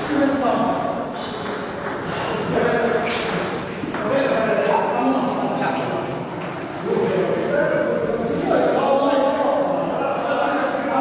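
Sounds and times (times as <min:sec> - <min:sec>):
table tennis ball pinging: 0:01.1 - 0:02.1.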